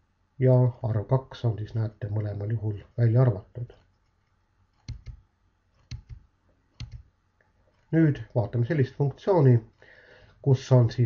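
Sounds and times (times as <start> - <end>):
computer mouse button clicking: 4.8 - 5.2, 5.8 - 6.2, 6.8 - 7.1.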